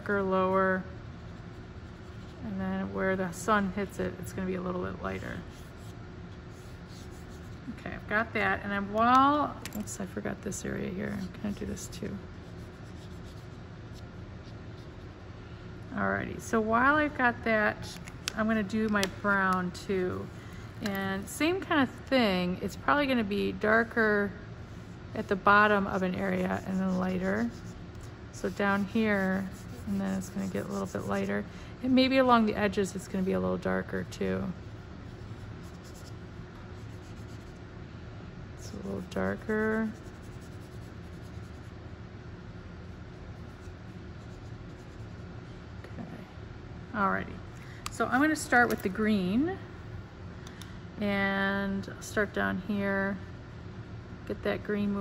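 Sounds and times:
marker scratching on paper: 5.1s - 7.7s, 11.1s - 15.1s, 25.2s - 31.4s, 35.1s - 36.2s, 36.8s - 37.6s, 38.7s - 41.7s, 43.4s - 45.2s.

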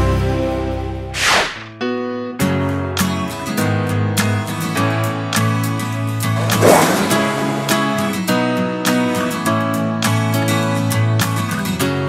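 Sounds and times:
background music: 0.0s - 12.0s
whoosh falling in pitch: 1.2s - 1.7s
plucked guitar music: 1.8s - 12.0s.

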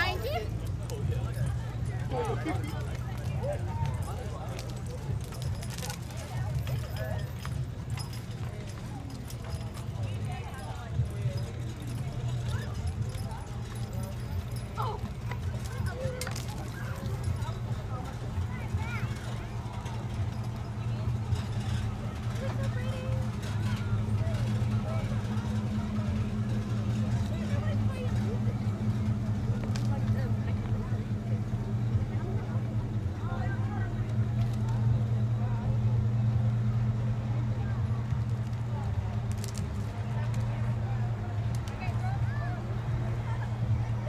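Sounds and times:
hooves clip-clopping on asphalt: 0.0s - 36.0s
people talking: 0.0s - 44.0s
vehicle engines humming: 0.0s - 44.0s.

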